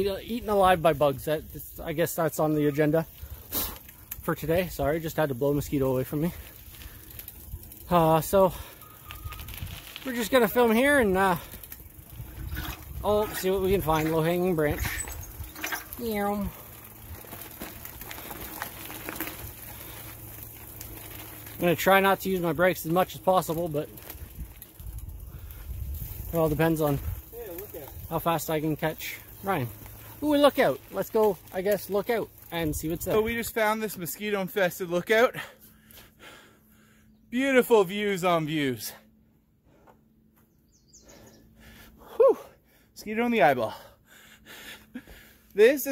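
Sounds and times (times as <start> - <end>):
bicycle tyres rolling on gravel: 0.0 - 39.2, 40.3 - 44.0, 44.6 - 45.9
faint high bird chirps: 8.8 - 9.5, 40.5 - 41.5
clicks and knocks from bikes: 13.9 - 25.1.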